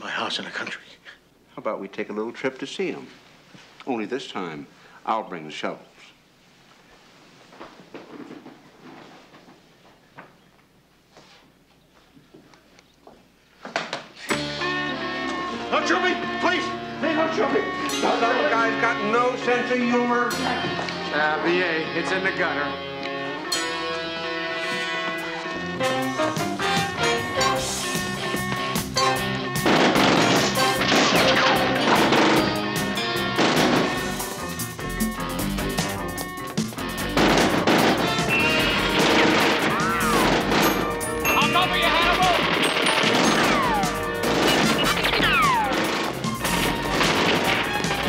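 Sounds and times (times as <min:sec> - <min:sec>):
people moving about a room: 0:02.4 - 0:04.8, 0:05.8 - 0:14.4, 0:20.4 - 0:21.2, 0:24.0 - 0:28.9
crashing sound effect: 0:37.2 - 0:40.9, 0:42.3 - 0:48.0.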